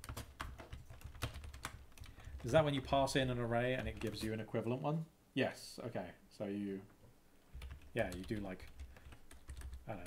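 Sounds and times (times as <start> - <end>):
computer keyboard typing: 0.0 - 4.4, 7.5 - 10.0.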